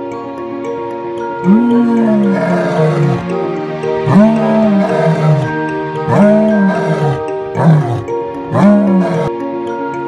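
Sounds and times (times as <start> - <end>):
background music sustained notes: 0.0 - 10.0
lion roaring: 1.4 - 3.3, 4.0 - 9.3.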